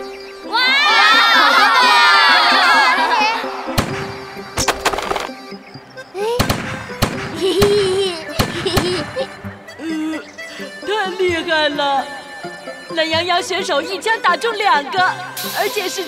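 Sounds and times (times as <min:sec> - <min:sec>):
background music: 0:00.0 - 0:16.0
high wavering cartoon cry: 0:00.4 - 0:03.6
gunshot bangs: 0:03.8 - 0:05.3, 0:06.4 - 0:07.8, 0:08.4 - 0:09.2.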